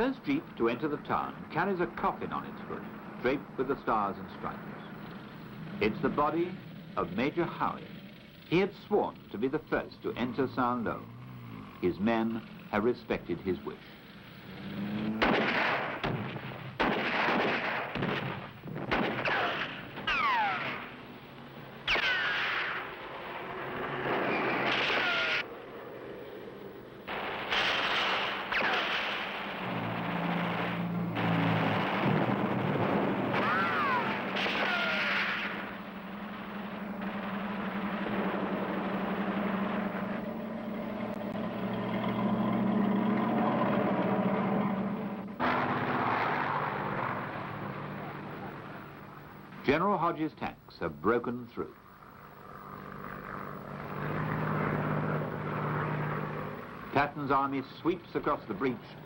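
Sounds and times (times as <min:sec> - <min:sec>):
tank engines droning: 0:00.0 - 0:59.0
explosions: 0:15.0 - 0:21.1, 0:21.8 - 0:25.5, 0:27.1 - 0:40.2
gunfire: 0:15.0 - 0:21.1, 0:21.8 - 0:25.5, 0:27.0 - 0:40.2
falling whistle of shells: 0:19.2 - 0:20.9, 0:21.9 - 0:22.9, 0:24.2 - 0:25.5, 0:33.4 - 0:35.7.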